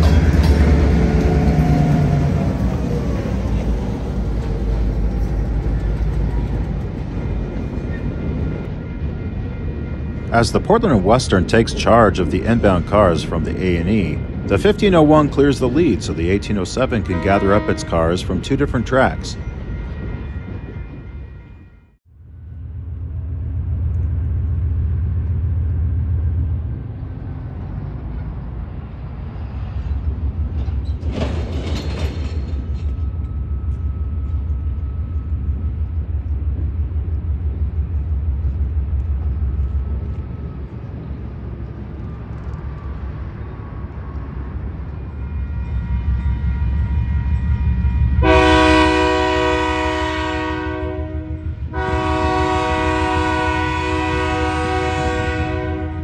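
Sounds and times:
diesel locomotive engine running: 0.0 - 21.3, 22.1 - 56.0
train air horn blasts: 16.9 - 18.8, 48.0 - 56.0.

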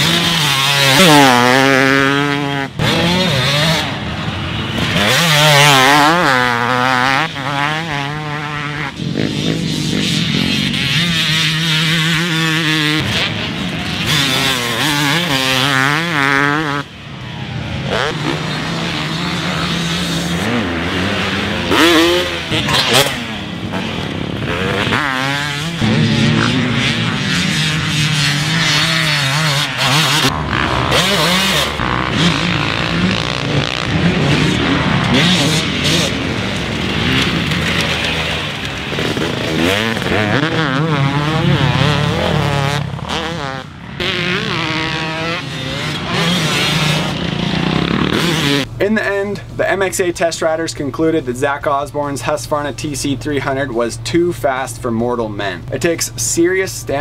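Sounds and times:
motocross bike engine revving: 0.0 - 57.0.

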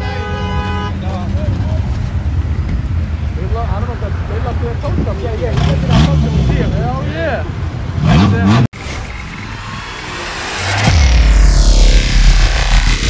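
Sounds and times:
bystanders' voices: 0.0 - 8.7
engine revving: 5.4 - 6.9, 8.0 - 13.0
whoosh: 8.8 - 13.0.

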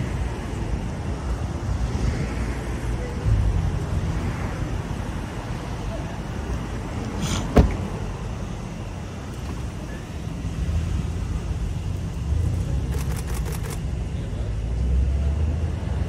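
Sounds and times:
street traffic: 0.0 - 16.0.

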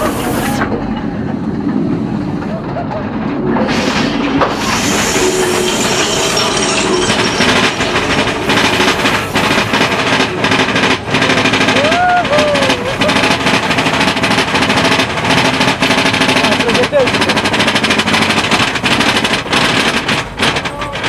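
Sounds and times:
roller coaster clattering on track: 0.0 - 21.0.

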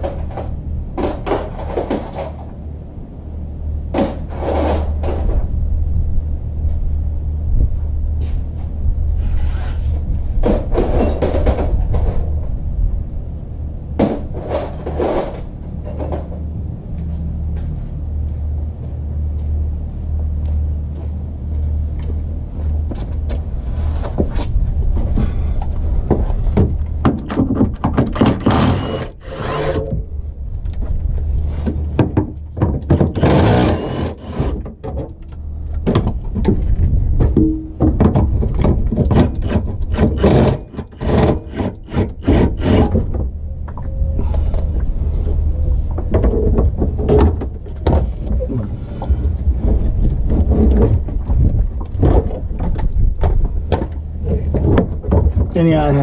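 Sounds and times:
steady low rumble: 0.0 - 56.0
tools knocking and clanking: 26.1 - 30.0, 31.7 - 43.3.

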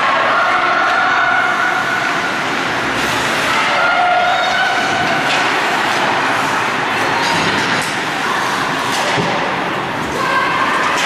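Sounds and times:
distant shouts: 0.0 - 2.5, 3.4 - 5.7, 10.1 - 11.0
arena noise rumbling: 0.0 - 11.0.

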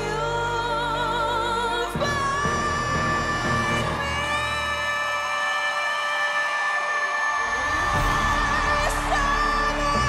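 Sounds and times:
ballad backing music: 0.0 - 5.6.

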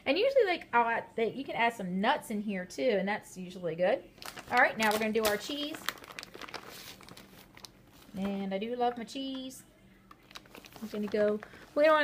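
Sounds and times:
plastic bag crinkling: 4.2 - 12.0.

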